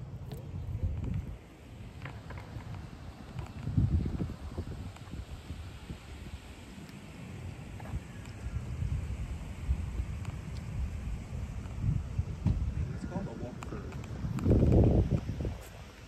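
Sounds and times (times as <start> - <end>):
wind buffeting microphone: 0.0 - 6.8, 7.4 - 16.0.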